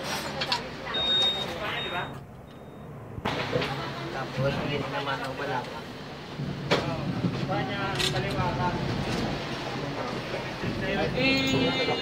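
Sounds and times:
voices talking: 0:00.2 - 0:06.0, 0:07.7 - 0:12.0.

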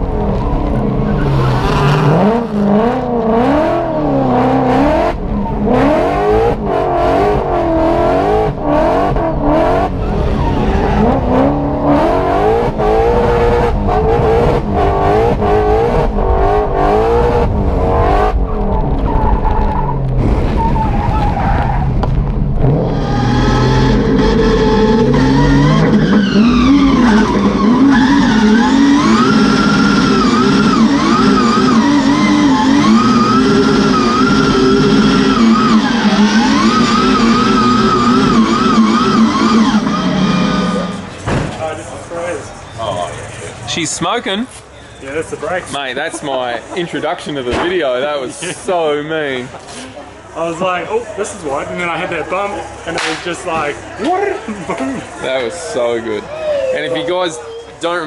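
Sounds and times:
car engine revving hard: 0:00.0 - 0:19.2, 0:22.0 - 0:41.2
tyres skidding: 0:00.0 - 0:58.0.

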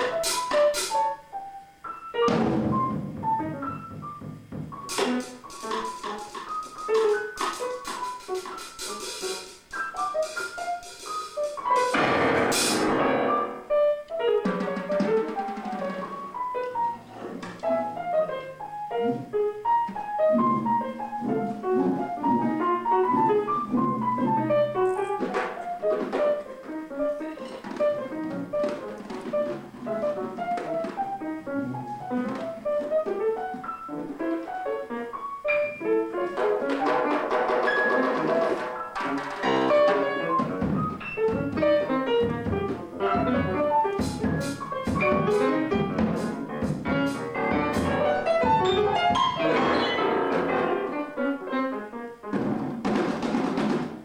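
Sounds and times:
drums and cymbals: 0:00.0 - 0:01.2, 0:02.2 - 0:13.8, 0:14.4 - 0:16.4, 0:35.6 - 0:50.8
piano runs: 0:00.0 - 0:53.3.

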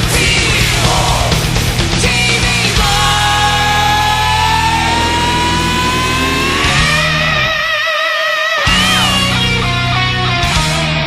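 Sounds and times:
melodic heavy metal music: 0:00.0 - 0:11.0
held electric guitar lead note: 0:03.4 - 0:11.0.

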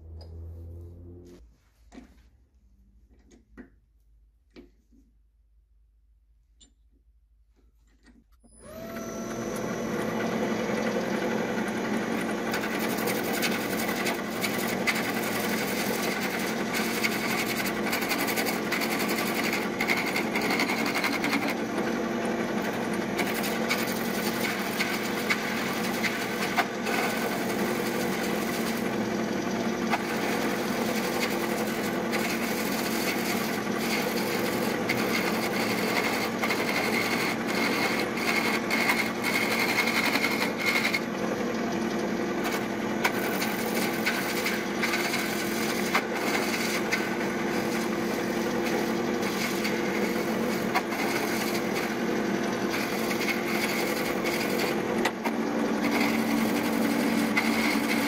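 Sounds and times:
lathe motor hum: 0:08.5 - 0:58.0
lathe tool scraping: 0:08.7 - 0:58.0.

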